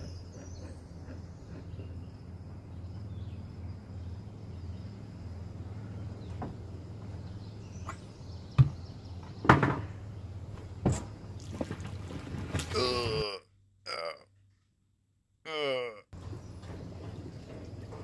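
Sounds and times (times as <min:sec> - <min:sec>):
outdoor background noise: 0:00.0 - 0:18.0
boat thumping on concrete: 0:08.5 - 0:10.0.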